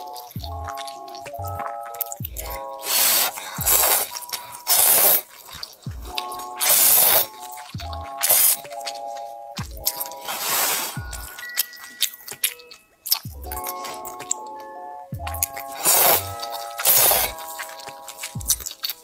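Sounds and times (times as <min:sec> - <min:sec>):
background music with bass: 0:00.0 - 0:11.7, 0:13.1 - 0:19.0
person slurping noodles: 0:02.0 - 0:09.0, 0:09.8 - 0:11.8, 0:15.3 - 0:19.0.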